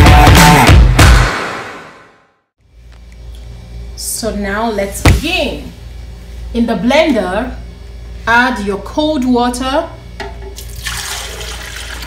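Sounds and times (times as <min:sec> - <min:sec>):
water pouring into plastic jar: 0:10.6 - 0:12.0.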